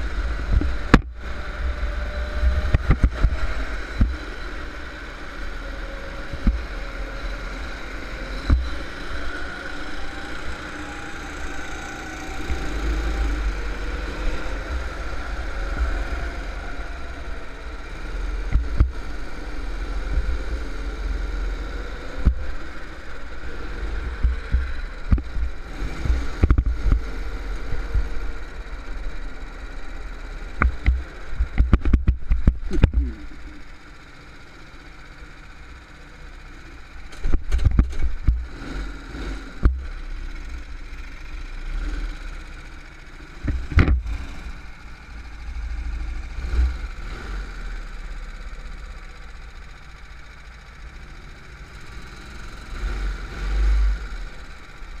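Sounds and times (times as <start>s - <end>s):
go-kart engine low revs: 0.0s - 55.0s
sharp knocks and thuds: 30.6s - 33.3s.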